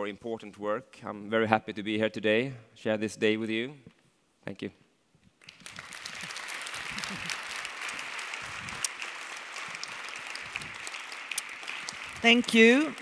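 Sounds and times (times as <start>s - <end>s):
audience applauding: 5.4s - 13.0s.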